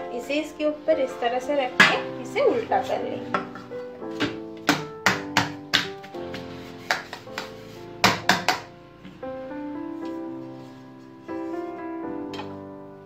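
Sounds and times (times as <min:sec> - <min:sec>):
background music: 0:00.0 - 0:13.0.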